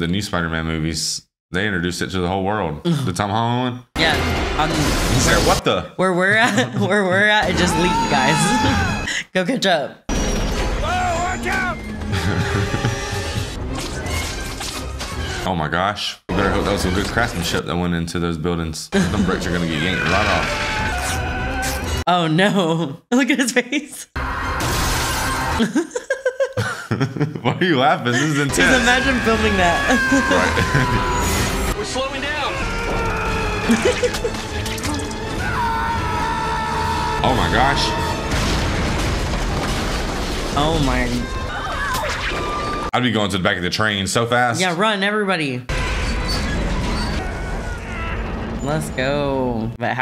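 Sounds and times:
dramatic music: 0:10.1 - 0:15.5, 0:28.2 - 0:42.9.

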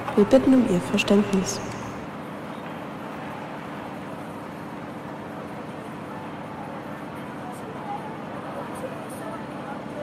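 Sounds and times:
railway platform ambience: 0:00.0 - 0:10.0.

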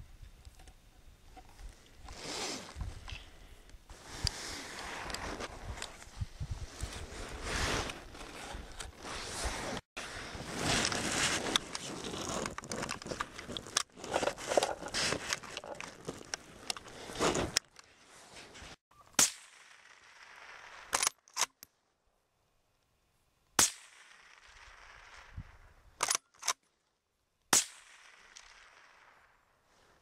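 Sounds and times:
clothing rustling against snow: 0:02.1 - 0:18.8.

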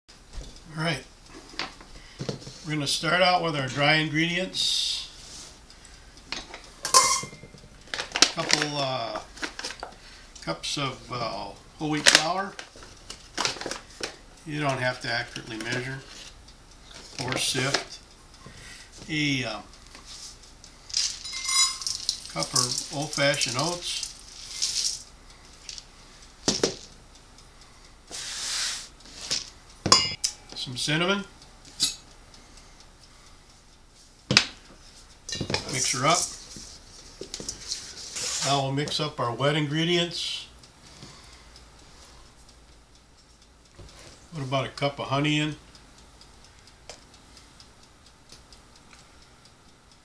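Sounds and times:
metallic clink ringing: 0:06.8 - 0:07.6, 0:21.2 - 0:22.8, 0:29.9 - 0:30.6, 0:31.8 - 0:32.1.

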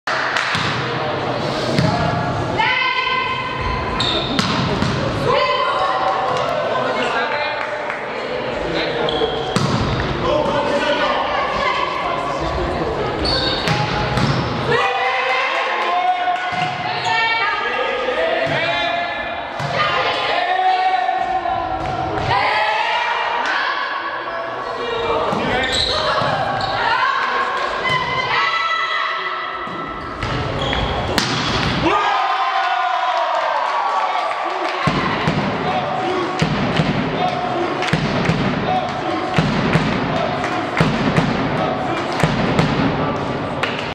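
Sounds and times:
volleyball strikes echoing: 0:00.1 - 0:01.1, 0:01.8 - 0:02.4, 0:03.8 - 0:05.4, 0:09.3 - 0:10.8, 0:13.5 - 0:14.8, 0:16.4 - 0:17.0, 0:18.4 - 0:20.3, 0:29.6 - 0:32.0, 0:34.7 - 0:43.9
players calling and shouting: 0:00.1 - 0:43.9
volleyball being hit: 0:04.3 - 0:05.1, 0:09.6 - 0:10.1, 0:31.1 - 0:31.9, 0:37.8 - 0:38.6, 0:39.4 - 0:40.2, 0:40.8 - 0:41.5, 0:42.1 - 0:43.0
players shouting calls: 0:30.6 - 0:43.3.

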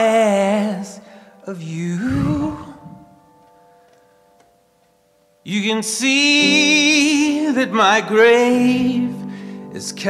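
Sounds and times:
upright piano notes ringing: 0:00.0 - 0:10.0.

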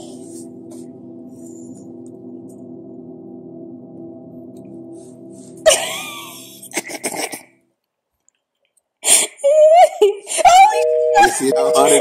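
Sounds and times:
gong-like tone: 0:00.0 - 0:07.3, 0:10.7 - 0:12.0.

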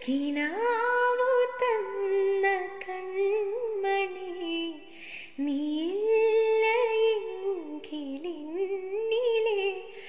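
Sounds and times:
woman singing unaccompanied: 0:00.0 - 0:10.0.

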